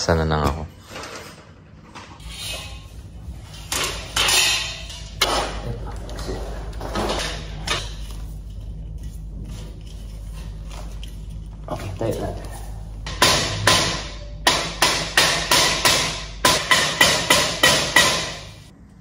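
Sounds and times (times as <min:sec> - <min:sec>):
steady low hum: 0:00.0 - 0:19.0
metal furniture parts knocking: 0:03.5 - 0:07.9, 0:13.0 - 0:18.6.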